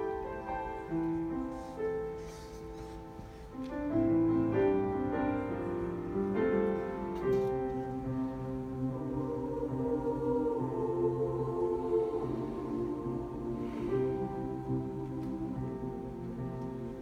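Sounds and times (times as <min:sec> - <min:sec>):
piano accompaniment: 0:00.0 - 0:17.0
mixed choir singing: 0:07.2 - 0:17.0.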